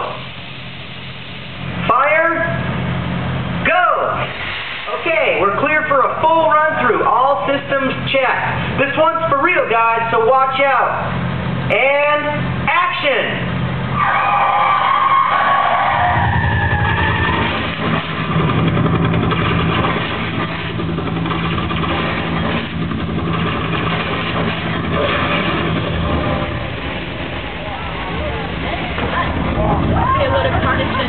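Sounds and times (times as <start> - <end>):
car engines revving: 13.5 - 31.0
high wavering squeal: 13.9 - 17.8.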